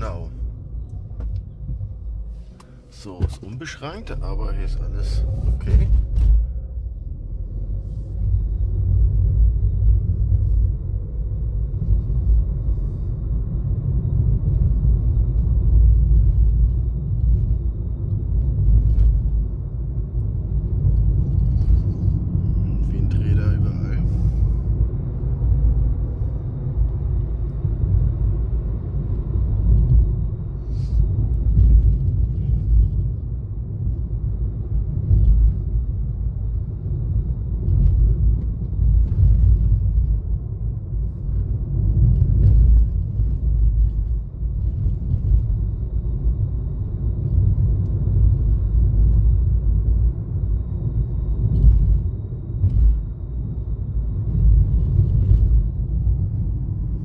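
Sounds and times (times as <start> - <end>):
car interior road rumble: 0.0 - 57.0.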